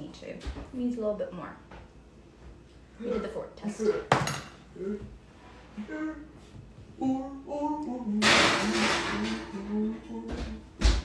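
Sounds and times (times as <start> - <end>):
murmured voice sounds: 4.8 - 5.2.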